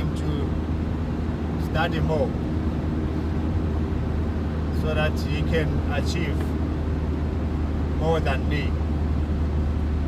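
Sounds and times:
vehicle engine and road drone: 0:00.0 - 0:10.0
man talking: 0:01.6 - 0:02.4, 0:04.7 - 0:06.6, 0:08.0 - 0:08.8.

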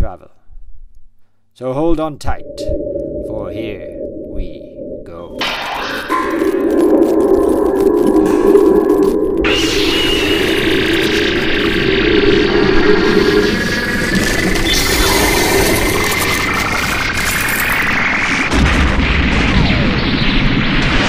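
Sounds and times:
electronic low hum: 0:02.1 - 0:19.1
rising electronic whine: 0:02.2 - 0:18.6.

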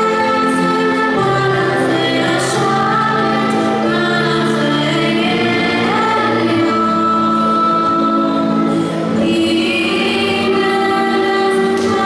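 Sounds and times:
choir singing long held notes: 0:00.0 - 0:12.0.

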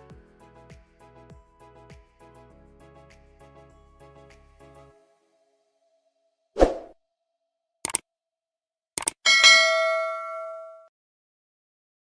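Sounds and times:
mouse clicks: 0:07.8 - 0:08.0
notification bell ding: 0:09.3 - 0:10.9.

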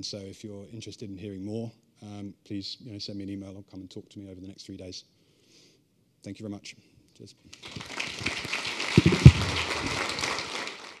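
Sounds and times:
audience applauding: 0:07.5 - 0:11.0.

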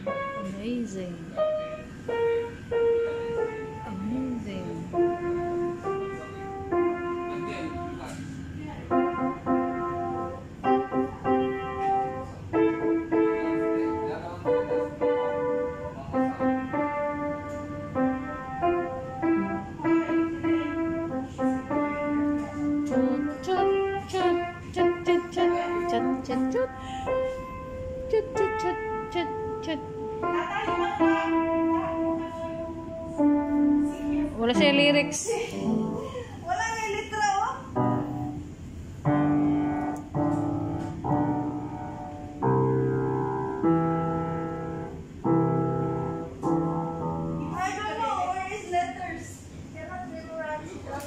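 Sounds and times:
acoustic piano tune: 0:00.0 - 0:50.4.

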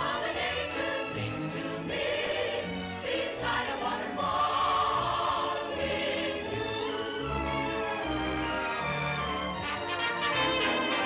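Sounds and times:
choir singing with accompaniment: 0:00.0 - 0:11.0.

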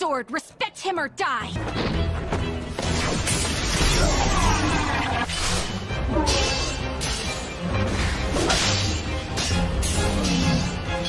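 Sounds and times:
dramatic background music: 0:00.0 - 0:11.0
sword swishes and strikes: 0:05.3 - 0:10.8.

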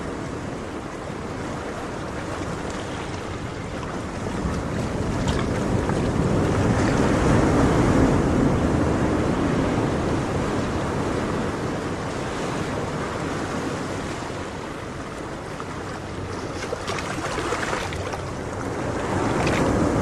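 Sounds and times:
ocean waves washing in: 0:00.0 - 0:20.0.

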